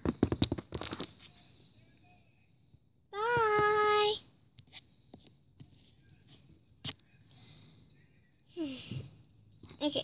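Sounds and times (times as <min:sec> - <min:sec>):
plastic toys tapping and rustling: 0:00.0 - 0:01.2.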